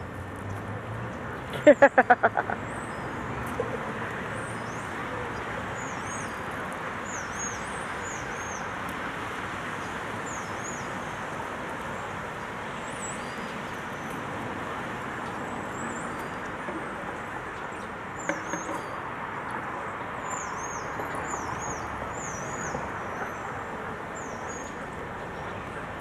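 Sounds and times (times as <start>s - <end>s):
distant road traffic: 0.0s - 26.0s.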